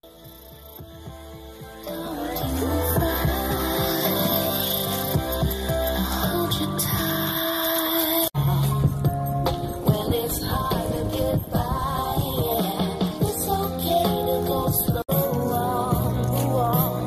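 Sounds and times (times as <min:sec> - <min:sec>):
background song: 0:00.0 - 0:17.0.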